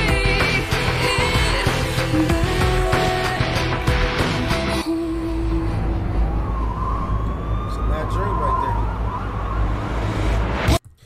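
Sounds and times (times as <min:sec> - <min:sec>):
emergency siren wailing: 0:04.8 - 0:10.7
low traffic rumble: 0:05.1 - 0:10.7.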